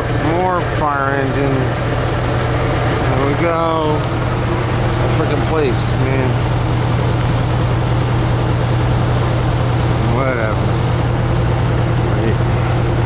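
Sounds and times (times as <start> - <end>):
constant rushing noise: 0.0 - 13.0
fire engines droning: 0.0 - 13.0.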